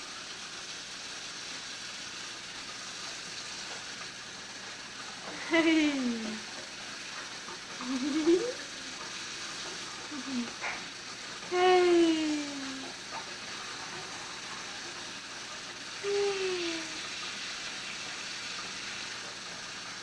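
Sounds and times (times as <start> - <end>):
faucet running into steel sink: 0.0 - 20.0
high voice cooing: 7.8 - 8.8, 10.1 - 10.6, 11.5 - 12.9, 16.0 - 17.1.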